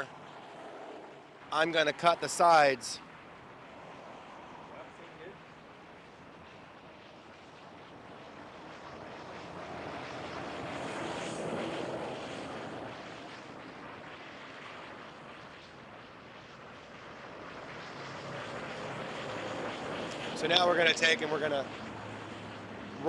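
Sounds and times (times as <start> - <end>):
distant engine passing: 0.0 - 14.0, 17.0 - 23.0.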